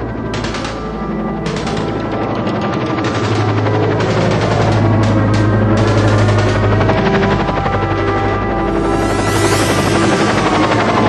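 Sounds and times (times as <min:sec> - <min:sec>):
dramatic music with low drone: 0:00.0 - 0:11.0
machine-gun fire: 0:00.3 - 0:07.5, 0:08.6 - 0:11.0.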